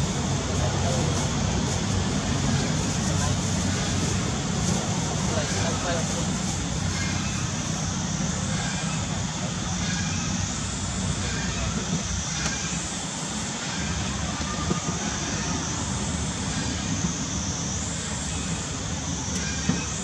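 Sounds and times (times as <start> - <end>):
faint distant voices: 0.0 - 17.1.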